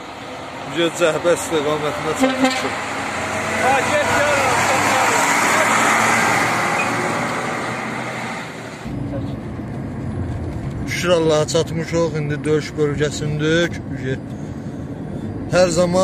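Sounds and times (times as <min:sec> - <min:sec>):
truck driving past: 0:00.0 - 0:13.2.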